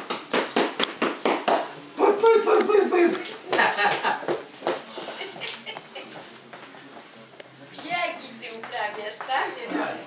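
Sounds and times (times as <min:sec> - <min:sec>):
fast sharp taps: 0:00.0 - 0:01.7.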